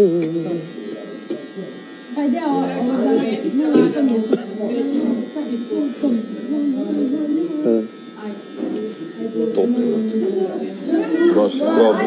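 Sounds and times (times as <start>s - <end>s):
man singing unaccompanied: 6.0s - 8.0s.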